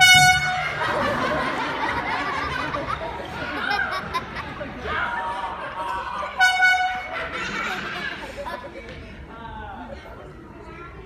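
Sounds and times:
high horn blast: 0:00.0 - 0:00.8, 0:06.4 - 0:07.2
audience laughter: 0:00.4 - 0:09.1.

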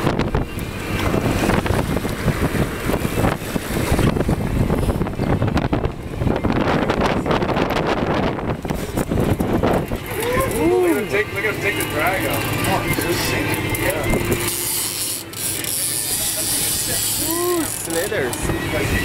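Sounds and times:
wind buffeting microphone: 0:00.0 - 0:19.0
fishing reel ratchet clicking: 0:11.8 - 0:18.4.

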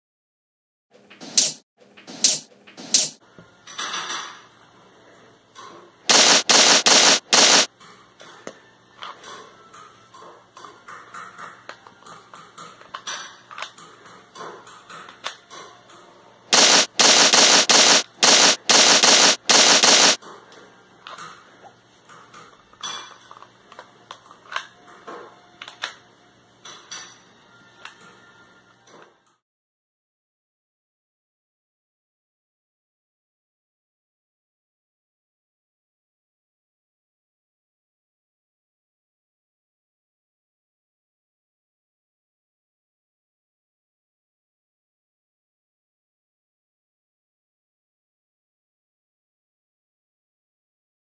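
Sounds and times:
loud bursts: 0:06.1 - 0:07.7, 0:16.5 - 0:20.2.

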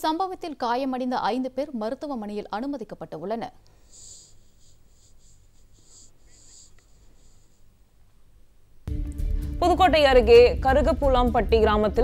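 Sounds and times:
pulsing high-pitched scratchy hiss: 0:03.9 - 0:07.7.

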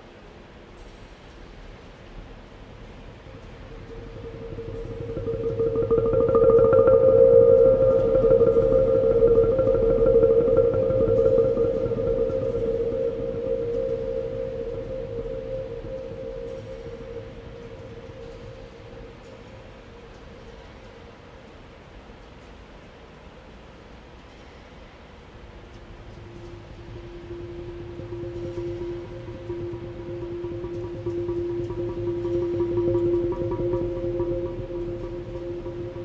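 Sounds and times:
earthenware jars ringing tone: 0:03.3 - 0:19.7, 0:26.3 - 0:36.0.

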